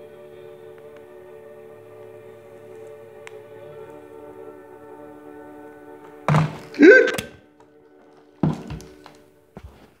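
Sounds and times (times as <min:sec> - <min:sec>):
faint radio music: 0:00.0 - 0:10.0.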